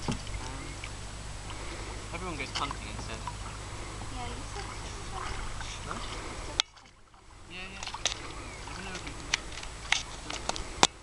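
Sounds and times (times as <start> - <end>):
steady outdoor noise: 0.0 - 11.0
faint voices: 1.9 - 6.8, 7.4 - 9.6.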